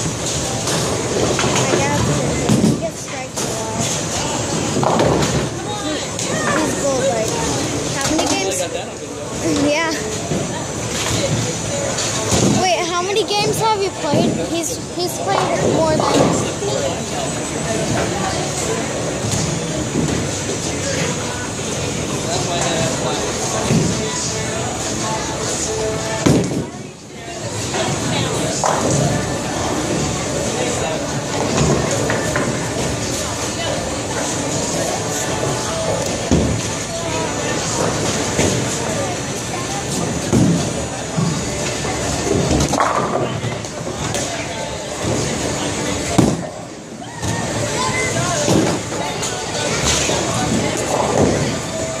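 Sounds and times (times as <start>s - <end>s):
chatter: 0.0s - 52.0s
voices: 0.4s - 52.0s
bowling balls rumbling: 13.9s - 51.8s.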